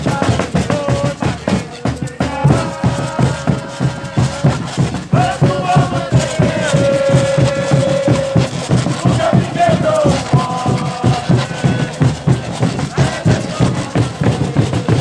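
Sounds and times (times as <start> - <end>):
drums: 0.0 - 15.0
scrapers keeping a beat: 0.0 - 15.0
women singing a chant: 0.0 - 15.0.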